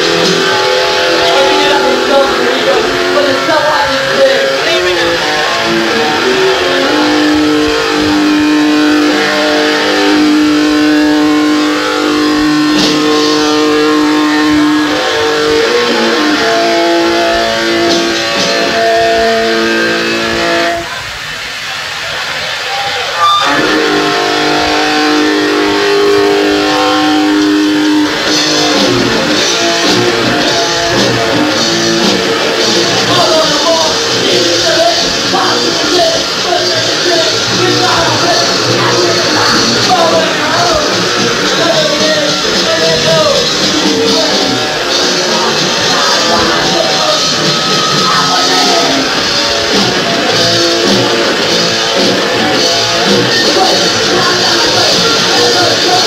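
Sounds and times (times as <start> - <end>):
distorted electric guitar chords: 0.0 - 56.0
punk band playing live: 0.0 - 56.0.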